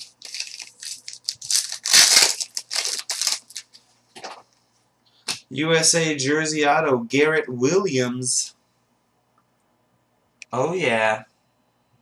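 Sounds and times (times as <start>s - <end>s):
plastic wrapper crinkling: 0.0s - 4.4s.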